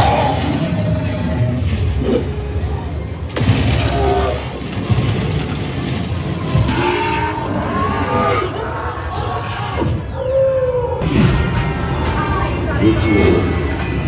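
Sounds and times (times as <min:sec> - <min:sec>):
dense music and sound effects: 0:00.0 - 0:14.0.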